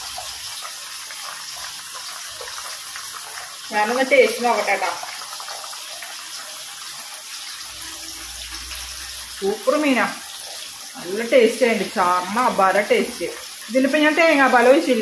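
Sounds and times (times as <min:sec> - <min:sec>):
woman speaking: 0:03.7 - 0:05.1, 0:09.4 - 0:10.2, 0:11.0 - 0:15.0.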